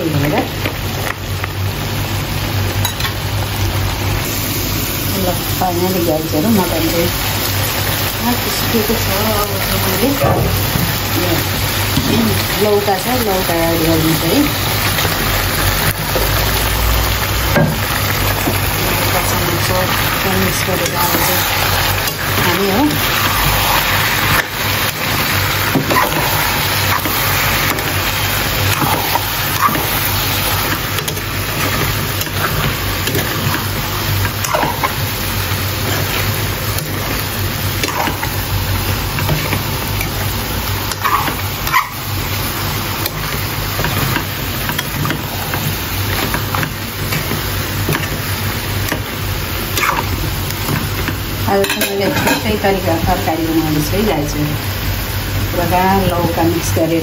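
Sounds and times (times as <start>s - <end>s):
curry cooking in a wok: 0.1s - 57.0s
steel spoon scraping a pan: 40.9s - 42.0s.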